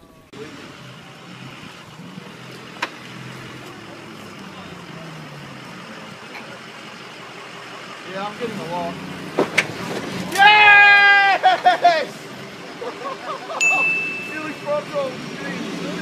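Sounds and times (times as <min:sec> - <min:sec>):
vehicle engine running: 0:00.0 - 0:10.4, 0:11.4 - 0:16.0.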